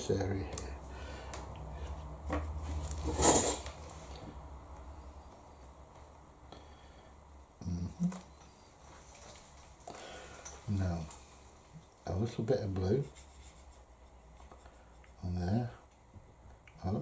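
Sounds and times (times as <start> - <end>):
paintbrush rustling in palette: 13.0 - 15.2.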